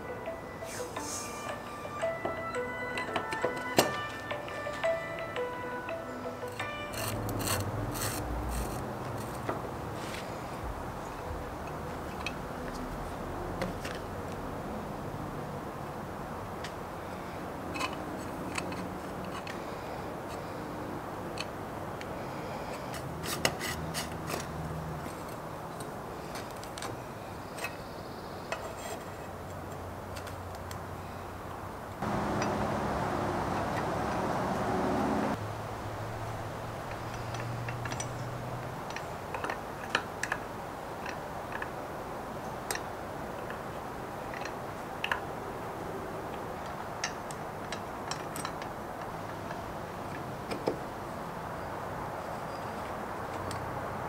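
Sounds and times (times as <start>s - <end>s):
loud steady noise: 32.0s - 36.9s.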